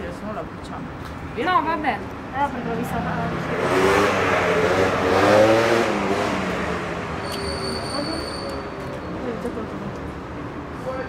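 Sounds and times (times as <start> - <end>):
car passing by: 2.5 - 8.3.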